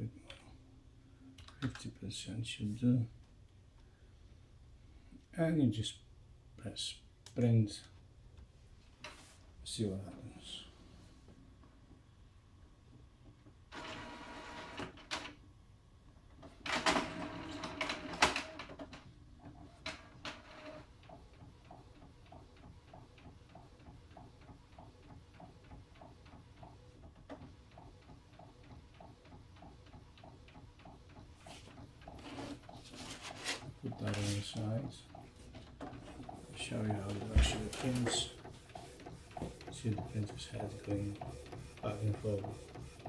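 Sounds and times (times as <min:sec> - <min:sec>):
printer drawing in paper: 0:27.6 - 0:43.0.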